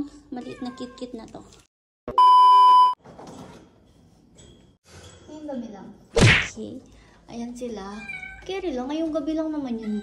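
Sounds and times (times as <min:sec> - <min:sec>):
test tone beep: 0:02.1 - 0:03.0.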